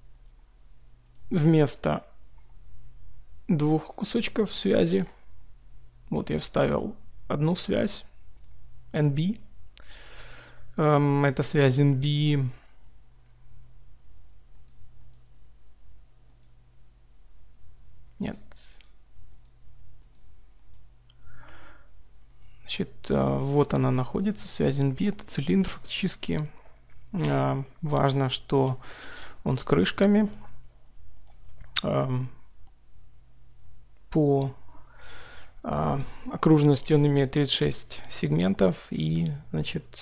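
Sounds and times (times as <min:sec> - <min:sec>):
computer mouse clicking: 0:00.1 - 0:01.3, 0:08.4 - 0:08.6, 0:14.5 - 0:15.3, 0:16.3 - 0:16.6, 0:18.2 - 0:21.2, 0:22.2 - 0:22.6, 0:30.2 - 0:31.9.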